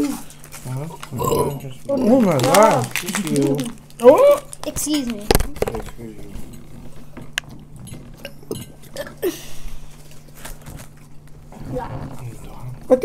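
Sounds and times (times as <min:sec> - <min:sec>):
steady low hum: 0:00.0 - 0:13.0
dishes clicking and clinking: 0:04.9 - 0:09.1.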